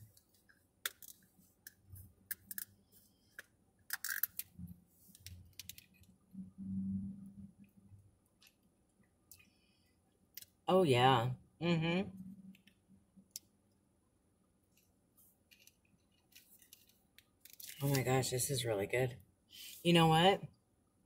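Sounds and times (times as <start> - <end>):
screw cap twisting open: 3.9 - 4.5.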